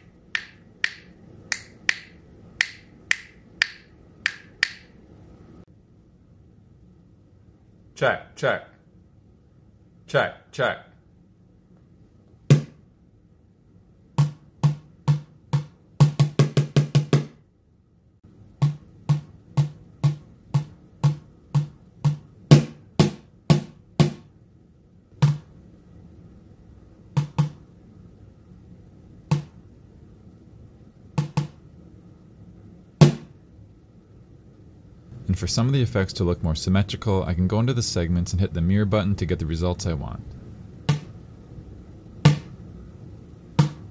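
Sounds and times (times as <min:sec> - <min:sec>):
sharp percussive hits: 0:18.6 - 0:24.3, 0:42.2 - 0:42.6.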